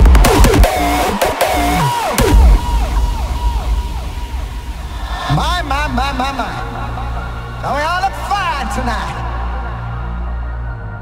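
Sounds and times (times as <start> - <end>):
low drone: 2.1 - 11.0.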